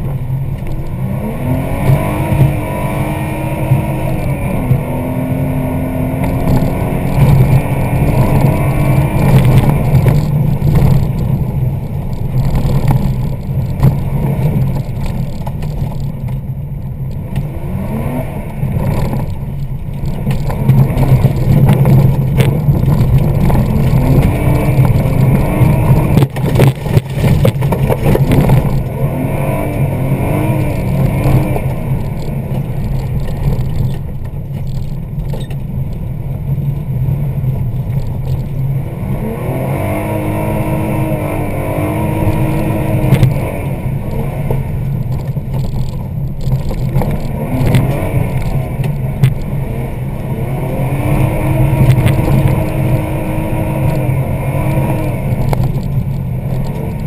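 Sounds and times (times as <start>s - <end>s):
rally car engine revving: 0.0s - 57.0s
road noise rumble: 0.0s - 57.0s.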